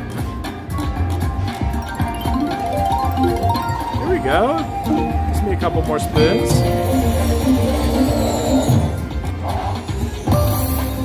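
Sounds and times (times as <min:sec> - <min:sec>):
slot machine game music: 0:00.7 - 0:09.0.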